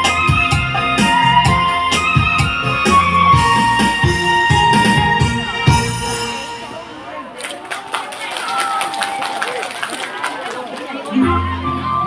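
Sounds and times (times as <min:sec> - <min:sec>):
audience hand claps: 0:07.4 - 0:11.1.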